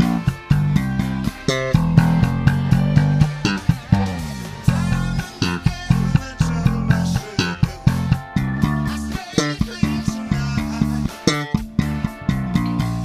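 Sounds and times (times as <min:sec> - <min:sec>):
backing track with drums: 0:00.0 - 0:13.0
plucked bass guitar line: 0:00.0 - 0:13.0.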